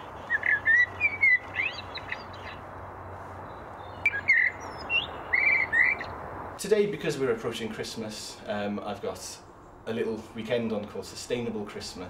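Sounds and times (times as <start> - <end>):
bird-call box chirps and whistles: 0.3 - 2.6, 3.9 - 6.1.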